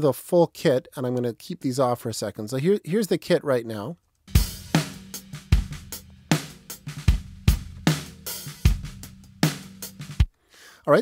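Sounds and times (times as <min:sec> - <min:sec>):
hi-hat and cymbals: 0:04.3 - 0:10.3
snare drum: 0:04.3 - 0:10.3
kick drum: 0:07.1 - 0:08.0.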